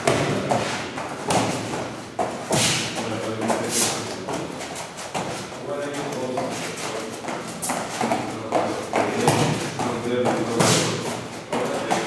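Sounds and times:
bare feet thudding on foam mats: 0.0s - 12.0s.

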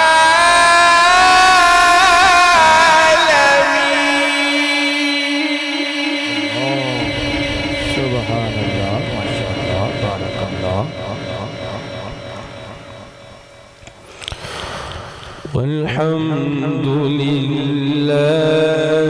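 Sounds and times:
man reciting melodically over loudspeaker: 0.0s - 13.8s, 15.3s - 19.0s.

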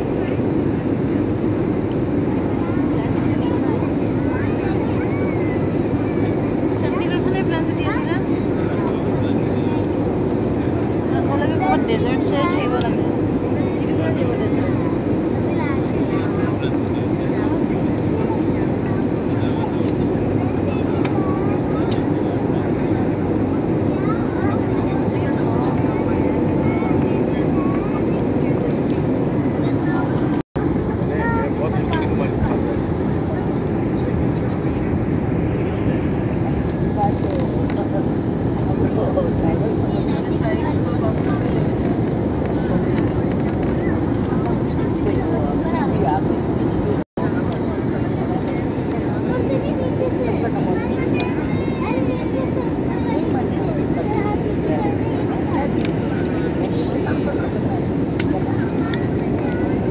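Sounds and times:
jet airliner cabin noise: 0.0s - 59.9s.

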